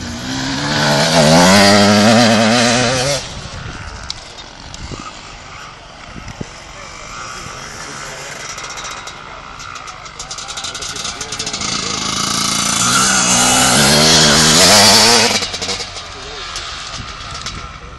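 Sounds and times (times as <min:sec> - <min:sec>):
faint motorcycle engines: 0:00.0 - 0:17.9
motorcycle engine revving: 0:00.0 - 0:17.9.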